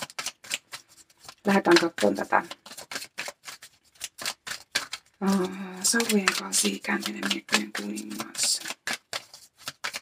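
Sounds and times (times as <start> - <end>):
cards being shuffled: 0.0 - 10.0
person speaking: 1.2 - 2.8, 5.2 - 9.0.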